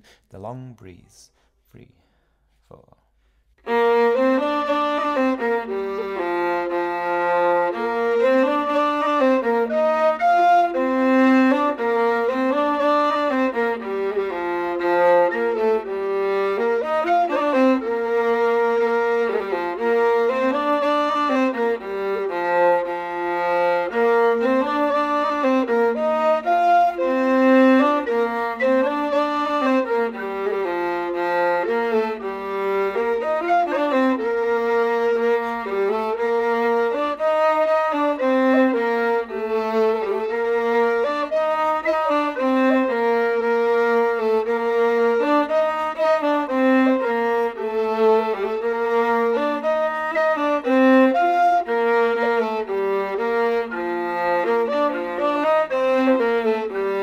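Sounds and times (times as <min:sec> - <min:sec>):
count-in: 0:00.1 - 0:03.0
fiddle playing folk tune: 0:03.6 - 0:57.0
tin whistle playing folk tune: 0:03.7 - 0:57.0.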